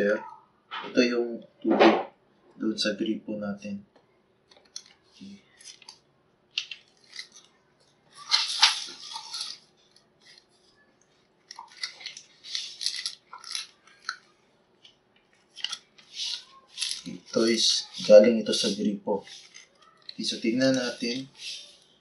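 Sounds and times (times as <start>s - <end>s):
paper label rustling: 4.5s - 22.0s.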